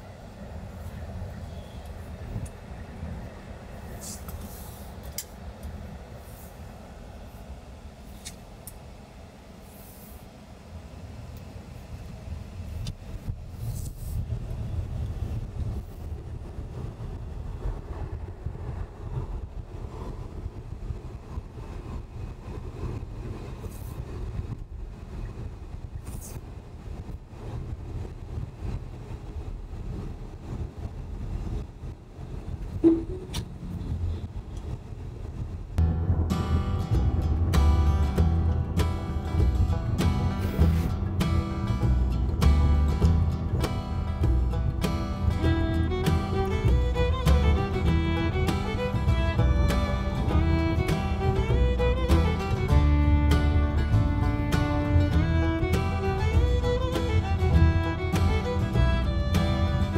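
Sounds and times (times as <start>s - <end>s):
tyre and road noise in car cabin: 10.3s - 59.9s
short sharp sound: 32.8s - 33.5s.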